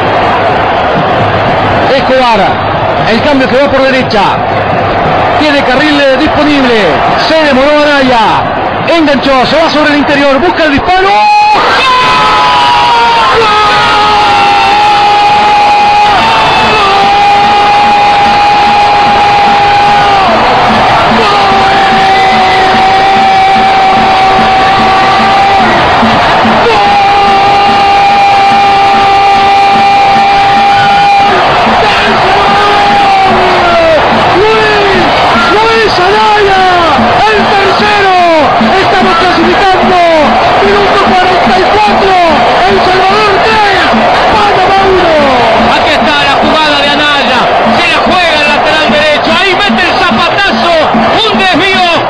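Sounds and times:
crowd noise: 0.0s - 52.0s
sports commentator shouting: 5.2s - 52.0s.

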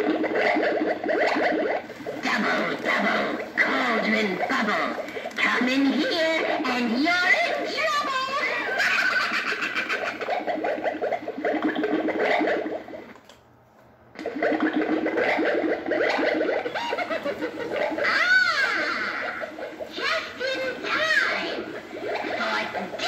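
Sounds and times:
recorded witch voice cackling: 2.1s - 11.1s, 16.0s - 23.0s
rising and falling wail: 17.8s - 19.7s.

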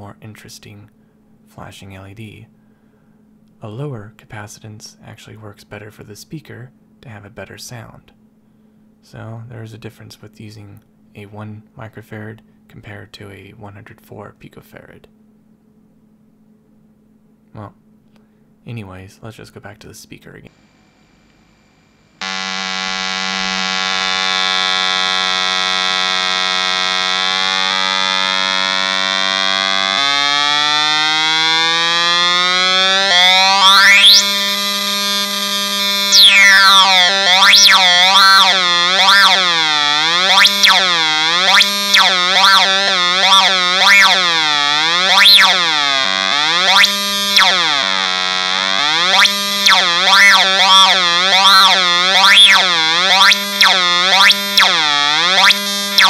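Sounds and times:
buzzy square-wave tone: 22.2s - 56.0s.

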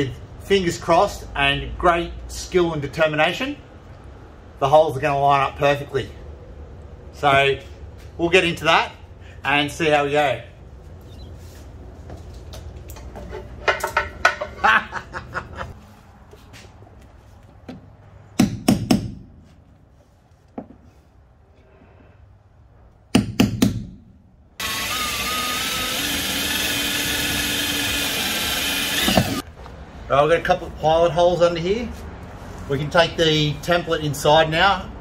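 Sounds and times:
tools and parts knocking: 12.9s - 14.8s
power drill whining: 24.6s - 29.4s.

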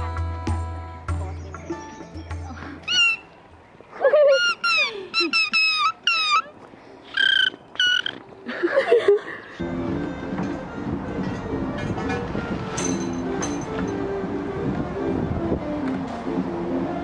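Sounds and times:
women giggling and squealing: 3.9s - 6.6s, 8.4s - 9.6s.

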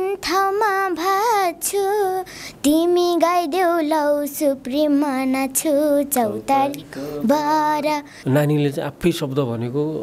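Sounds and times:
girl singing unaccompanied: 0.0s - 8.4s.

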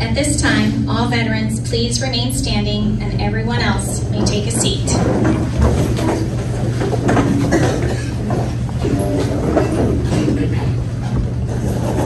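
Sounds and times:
faint voices: 0.0s - 12.0s
room hum: 0.0s - 12.0s
knocks and shuffling: 3.7s - 12.0s.

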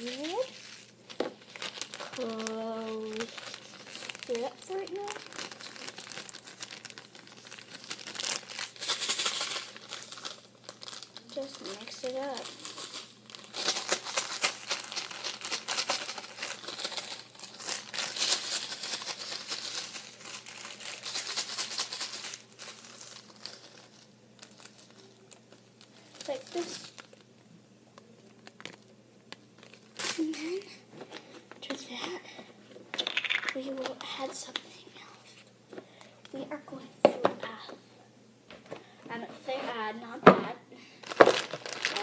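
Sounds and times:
plastic bag crinkling: 0.0s - 27.4s, 28.0s - 31.8s, 41.0s - 42.0s.

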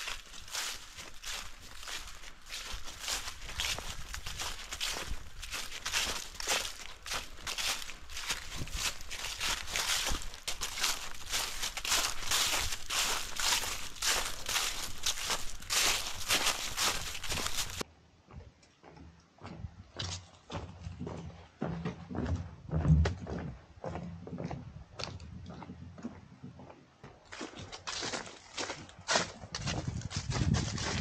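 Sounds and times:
footsteps through grass and leaves: 0.0s - 17.9s, 27.3s - 31.0s.

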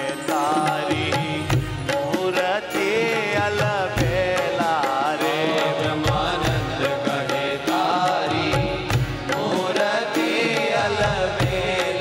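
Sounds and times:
man singing devotional chant: 0.0s - 12.0s.

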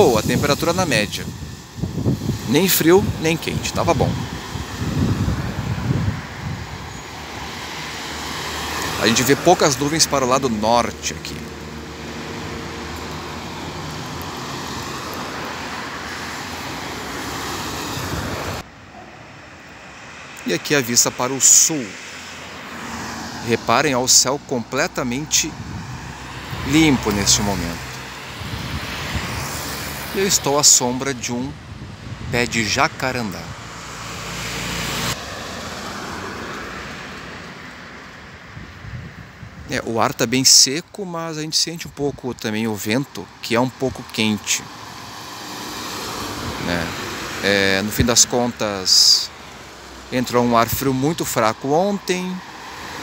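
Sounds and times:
cars passing on street: 0.0s - 53.0s.

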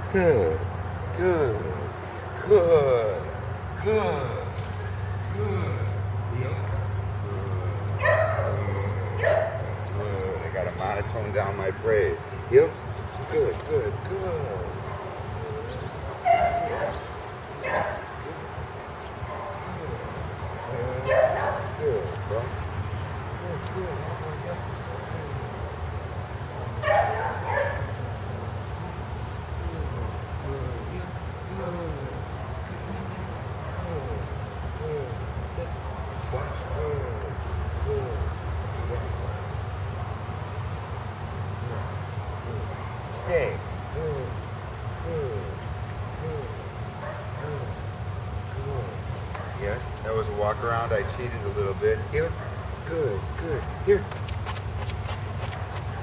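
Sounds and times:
steady low hum: 0.0s - 56.0s
dog barking: 8.0s - 9.7s, 16.2s - 18.1s, 21.0s - 21.8s, 26.8s - 28.0s, 47.0s - 47.7s.

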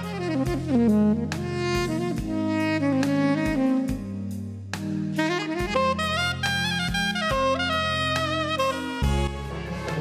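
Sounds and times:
held bass notes: 0.0s - 10.0s
saxophone melody: 0.0s - 10.0s.

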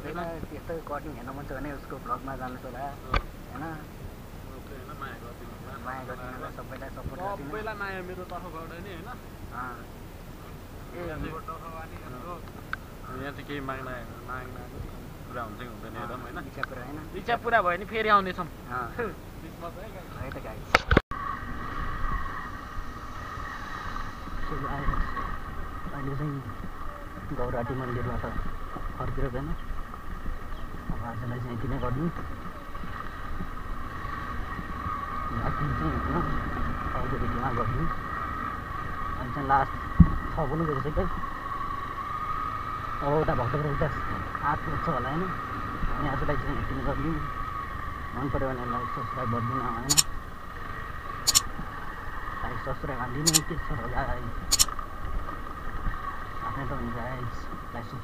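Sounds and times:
road noise on dirt track: 0.0s - 58.0s
motorcycle running: 49.9s - 52.0s
double mouse click: 54.5s - 54.7s.

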